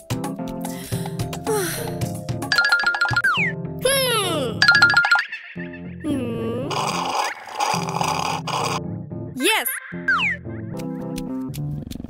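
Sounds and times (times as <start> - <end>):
bouncy cartoon music: 0.0 - 12.0.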